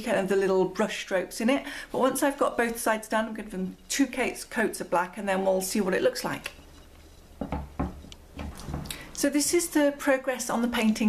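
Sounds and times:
hands knocking and rubbing canvas: 0:07.4 - 0:08.9.

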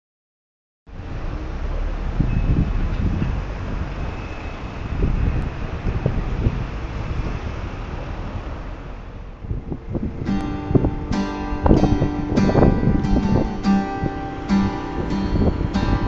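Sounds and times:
wind buffeting microphone: 0:00.9 - 0:16.0.

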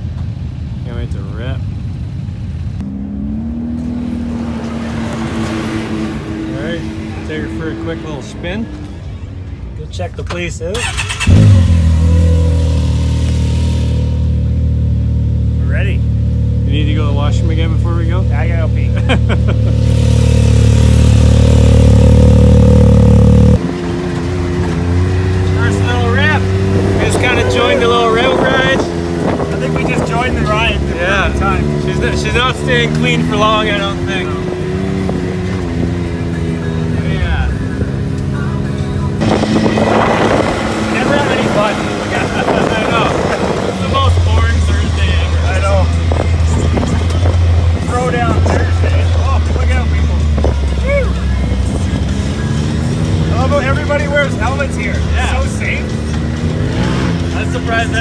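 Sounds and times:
engines on a dirt trail: 0:00.0 - 0:58.0
loud vehicle exhaust: 0:10.8 - 0:38.4, 0:39.0 - 0:58.0.

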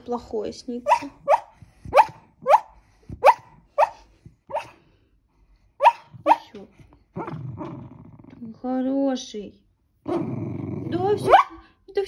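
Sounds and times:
dog yelping in sleep: 0:00.8 - 0:04.8.

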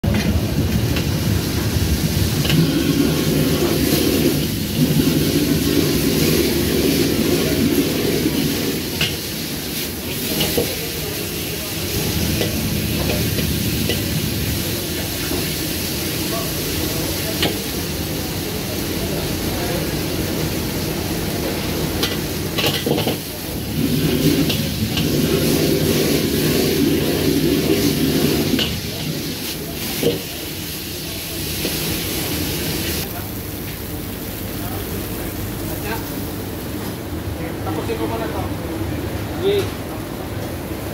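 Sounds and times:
gas burner roaring: 0:00.0 - 0:40.9
food frying sizzle: 0:00.1 - 0:37.1.

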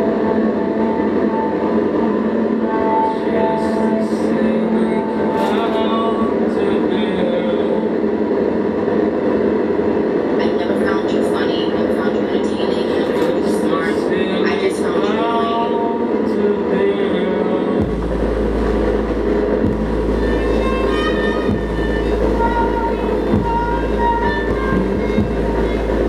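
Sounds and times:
distorted noise music: 0:00.0 - 0:08.7, 0:13.0 - 0:26.0
deep bass drone: 0:17.8 - 0:26.0.

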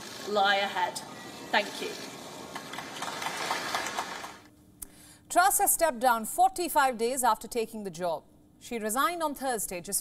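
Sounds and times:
outdoor ambience hiss: 0:00.0 - 0:10.0.

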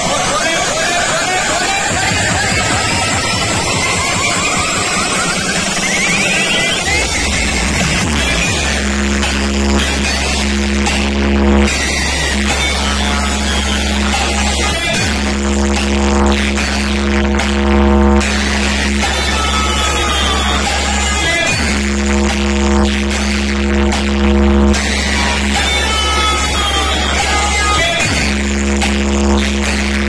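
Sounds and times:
electronic music with deep bass: 0:00.0 - 0:30.0
falling synth sweep: 0:01.9 - 0:10.0.

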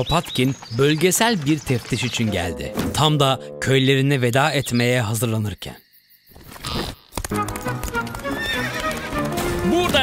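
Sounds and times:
horse hooves galloping: 0:00.0 - 0:02.5, 0:07.1 - 0:10.0
background music: 0:02.1 - 0:04.5, 0:07.3 - 0:10.0.

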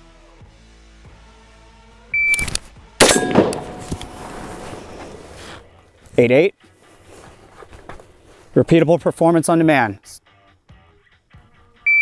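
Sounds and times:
shot timer beep: 0:02.2 - 0:02.5
rifle shot: 0:02.4 - 0:05.6.

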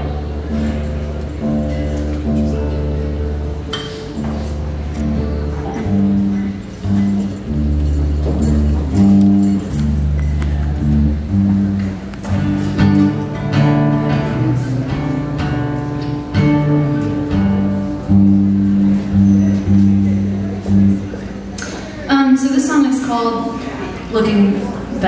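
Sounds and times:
guitars playing held chords: 0:00.0 - 0:25.0.

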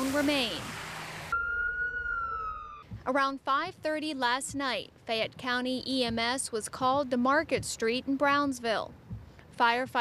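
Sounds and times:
outdoor ambient hiss: 0:00.0 - 0:01.6, 0:02.6 - 0:10.0
emergency siren wailing: 0:01.2 - 0:02.9.

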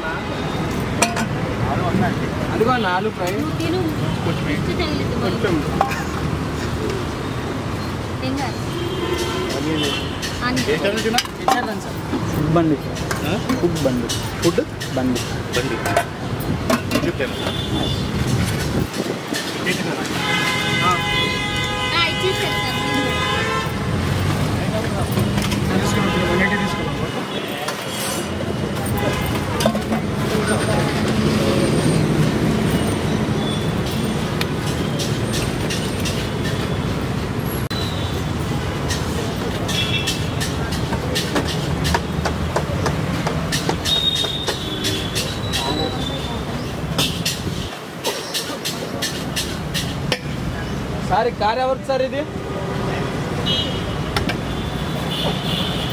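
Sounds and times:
road traffic: 0:00.0 - 0:55.9.

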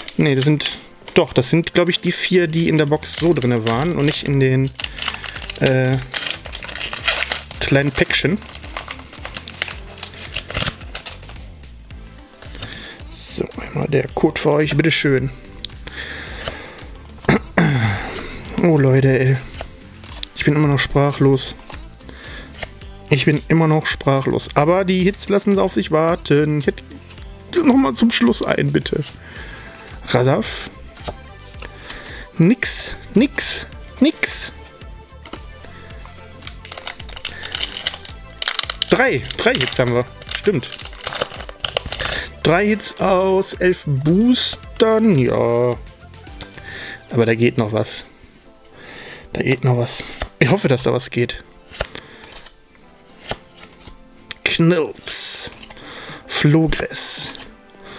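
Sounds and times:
foil wrapper crinkling: 0:00.0 - 0:01.5, 0:02.2 - 0:11.5, 0:19.4 - 0:20.4, 0:35.2 - 0:43.6, 0:51.7 - 0:54.4
background music: 0:00.0 - 0:57.9
cards sliding together: 0:03.2 - 0:11.7, 0:19.4 - 0:20.4, 0:21.6 - 0:22.8, 0:30.7 - 0:32.1, 0:34.6 - 0:42.5, 0:46.3 - 0:46.7, 0:50.0 - 0:50.4, 0:51.6 - 0:56.2, 0:57.3 - 0:57.8.

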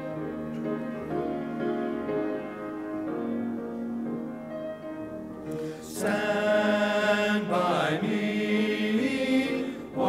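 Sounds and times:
men's choir singing in harmony: 0:05.7 - 0:10.0.

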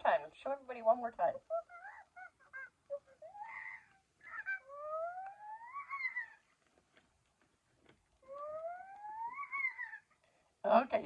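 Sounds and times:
electronic monkey calls: 0:01.5 - 0:06.5, 0:08.2 - 0:10.2.

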